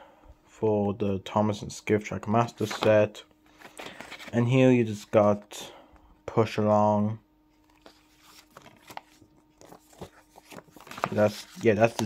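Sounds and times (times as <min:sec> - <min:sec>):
paper leaflet rustling: 0:02.4 - 0:04.5, 0:07.6 - 0:12.0.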